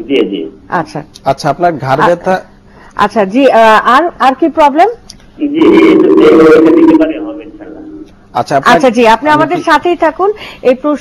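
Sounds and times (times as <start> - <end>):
person speaking: 5.4 - 10.0.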